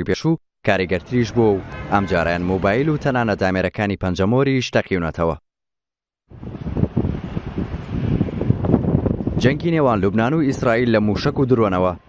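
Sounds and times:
wind buffeting microphone: 6.3s - 12.0s.

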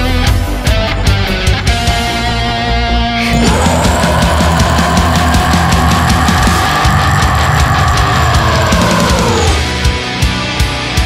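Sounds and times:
heavy metal band playing: 3.2s - 10.3s.

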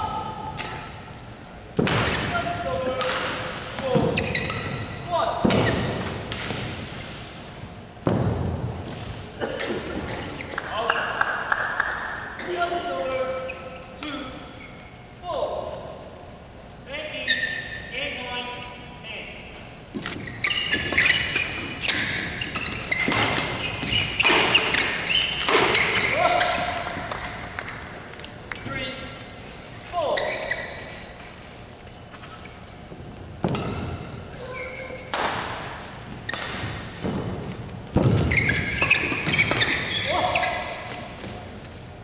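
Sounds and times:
shoe squeaks: 3.8s - 6.0s, 9.6s - 11.2s, 12.8s - 15.2s, 17.0s - 18.0s, 19.7s - 29.1s, 29.7s - 35.1s, 38.0s - 42.0s
racket hitting shuttlecock: 20.0s - 28.2s, 35.0s - 41.3s.

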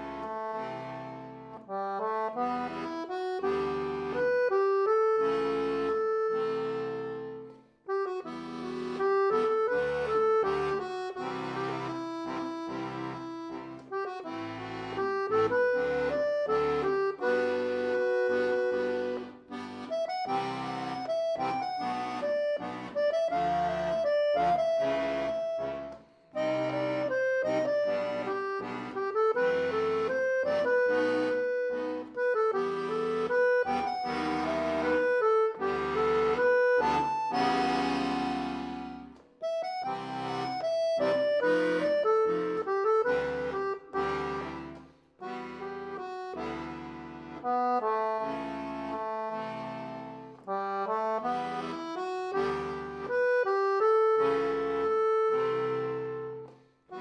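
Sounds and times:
accordion playing a ballad: 0.0s - 57.0s.

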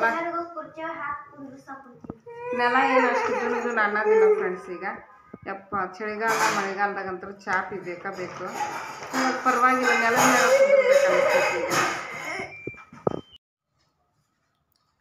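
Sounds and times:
woman talking: 2.4s - 11.7s.

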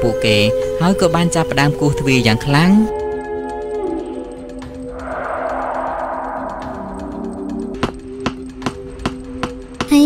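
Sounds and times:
eerie background music: 0.0s - 10.0s
spooky cartoon swell: 4.8s - 8.2s.

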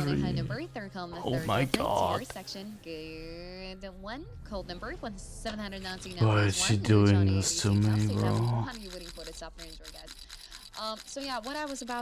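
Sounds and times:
man saying um: 6.2s - 8.7s
faint rapid clicks: 7.7s - 12.0s.

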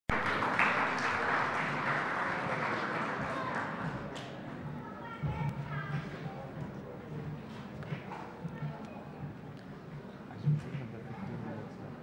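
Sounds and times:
audience applauding: 0.1s - 4.2s.

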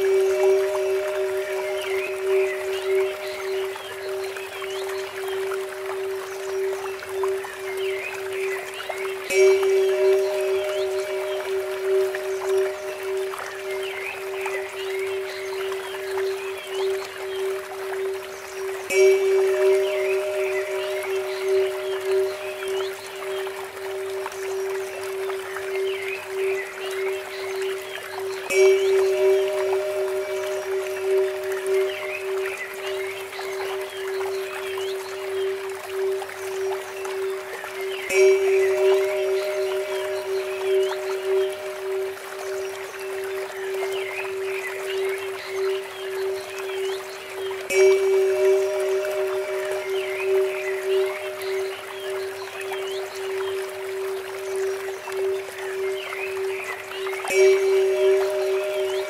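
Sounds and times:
temple bell ringing: 0.0s - 8.7s, 9.3s - 16.6s, 18.1s - 35.4s, 36.0s - 59.0s
small birds chirping: 0.0s - 59.0s
water trickling from fountain: 0.0s - 59.0s.

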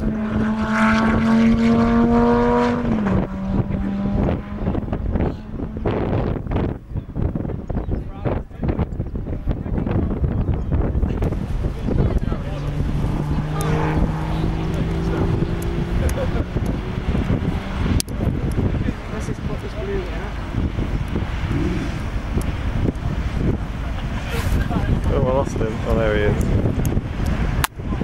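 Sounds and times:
race car engine passing: 0.0s - 6.7s, 11.1s - 27.6s
wind noise on microphone: 0.0s - 28.0s.

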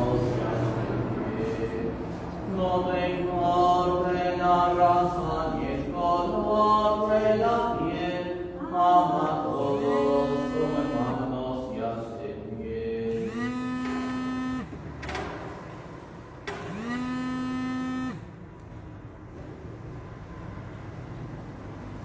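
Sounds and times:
slow church music: 0.0s - 15.2s.

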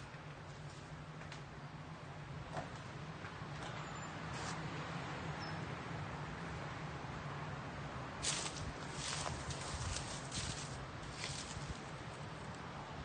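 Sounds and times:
footsteps crunching dead leaves: 8.2s - 11.9s.

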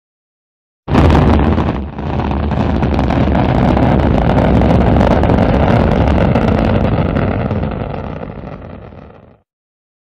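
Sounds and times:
rocket engine roar: 0.9s - 9.3s.

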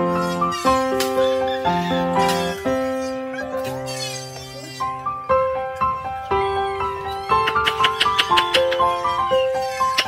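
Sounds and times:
keyboard melody: 0.0s - 10.0s.

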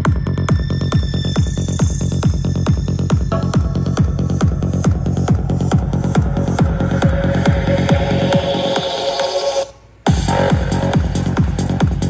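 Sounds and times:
kick drum beat: 0.0s - 8.8s, 10.1s - 12.0s
electronic dance music: 0.0s - 12.0s.

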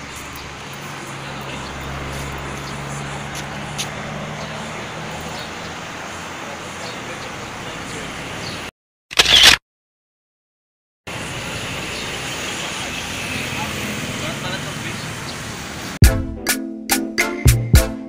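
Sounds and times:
voices: 0.0s - 8.7s, 11.1s - 15.9s
traffic: 0.0s - 9.6s, 11.1s - 16.0s
camera shutter click: 9.1s - 9.6s.

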